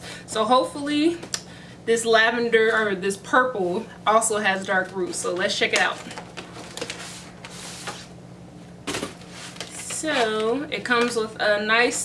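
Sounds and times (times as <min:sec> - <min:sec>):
cardboard box rustling scrape: 0:06.6 - 0:08.1, 0:09.0 - 0:10.2.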